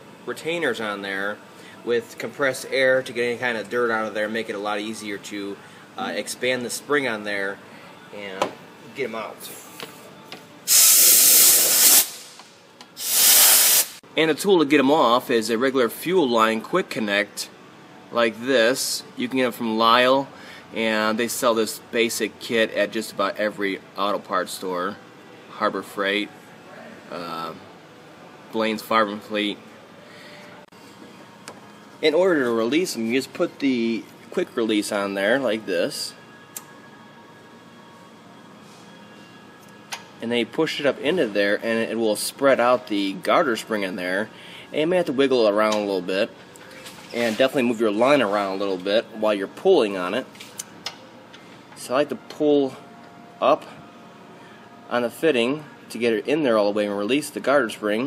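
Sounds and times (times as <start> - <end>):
compressed air blow gun bursts: 10.7 - 12.4, 13.0 - 14.0.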